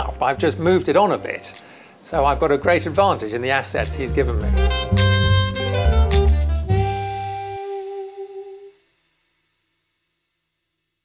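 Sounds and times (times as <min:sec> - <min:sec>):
bass: 0:00.0 - 0:08.4
jazz music: 0:00.0 - 0:08.8.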